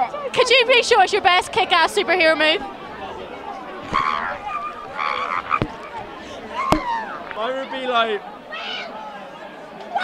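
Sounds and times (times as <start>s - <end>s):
microphone handling knock: 4.7s - 7.1s.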